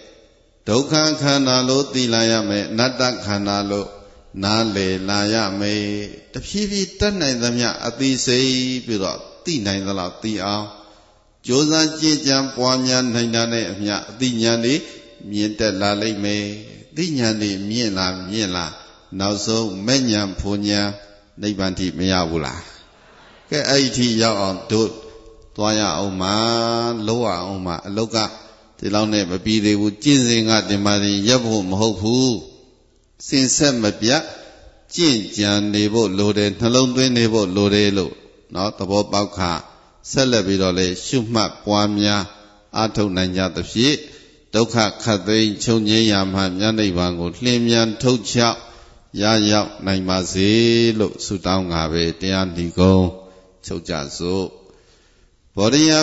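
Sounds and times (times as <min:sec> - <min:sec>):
man chanting: 0:00.0 - 0:54.6, 0:55.6 - 0:56.0
man speaking into a microphone: 0:00.0 - 0:56.0.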